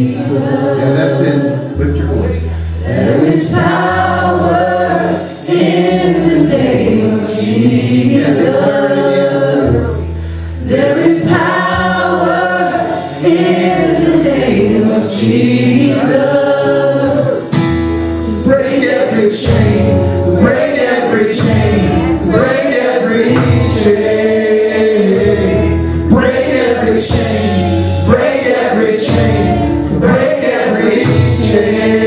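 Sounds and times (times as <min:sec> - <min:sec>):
acoustic guitar: 0:00.0 - 0:32.0
bass guitar line: 0:00.0 - 0:32.0
male and female voices singing: 0:00.0 - 0:32.0.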